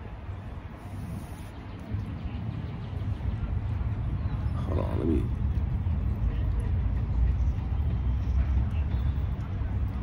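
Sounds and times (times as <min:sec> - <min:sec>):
low outdoor rumble: 0:00.0 - 0:10.0.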